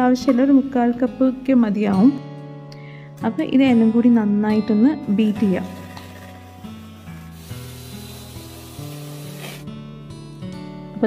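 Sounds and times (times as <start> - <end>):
background music with held notes: 0.0 - 11.0
beaters scraping bowl: 5.2 - 9.7
electric hand mixer whirring: 5.2 - 9.7.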